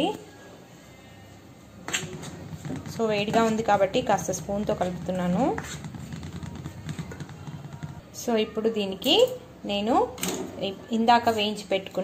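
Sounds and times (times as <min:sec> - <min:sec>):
metal spoon scraping steel bowl: 0:01.9 - 0:08.0.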